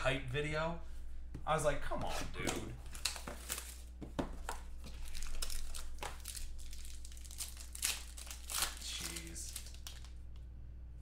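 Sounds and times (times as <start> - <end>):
plastic wrap crinkling and tearing: 2.8 - 10.2.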